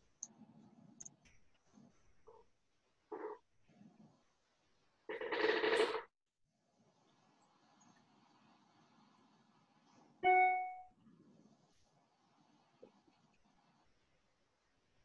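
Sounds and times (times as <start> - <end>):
clear ringing chime: 10.2 - 10.9.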